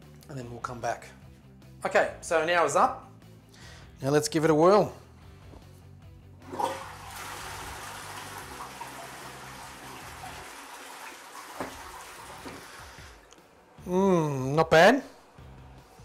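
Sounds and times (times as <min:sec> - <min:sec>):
toilet flushing: 0:06.4 - 0:13.3.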